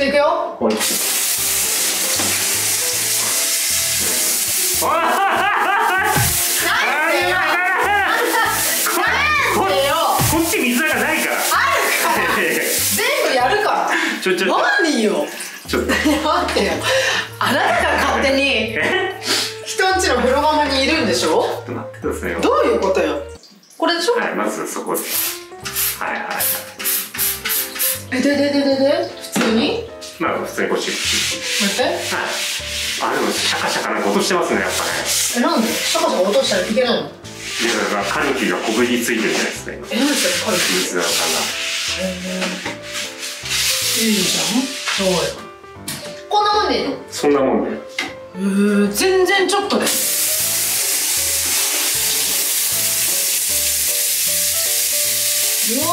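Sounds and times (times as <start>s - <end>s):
water spraying from shower head: 0.7s - 14.2s, 14.9s - 17.0s, 25.0s - 28.8s, 30.1s - 45.4s, 49.8s - 55.9s
sponge scrubbing wet glass mirror: 2.3s - 13.6s, 30.8s - 33.8s, 37.3s - 45.4s.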